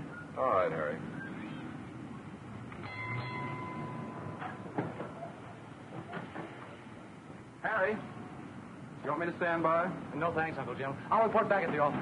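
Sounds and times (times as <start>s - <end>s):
high whine: 2.7s - 5.6s.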